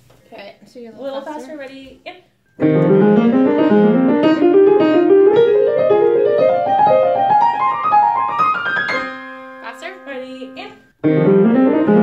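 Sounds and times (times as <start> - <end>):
two pianos rising passage: 2.6 - 9.8, 11.0 - 12.0.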